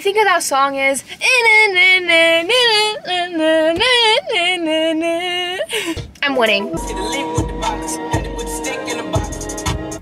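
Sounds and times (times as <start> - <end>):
woman singing pop song: 0.0 - 10.0.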